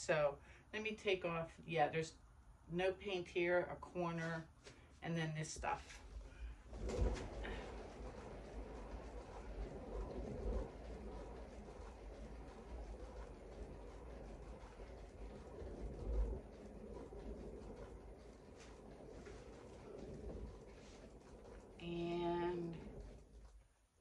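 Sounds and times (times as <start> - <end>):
painting spinner low rumble: 5.4 - 24.0.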